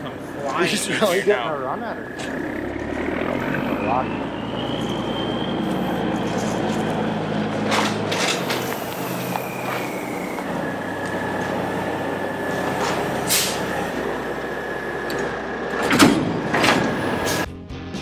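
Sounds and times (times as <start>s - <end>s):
diesel truck engine idling: 0.0s - 17.5s
loud metallic clunks: 15.0s - 17.5s.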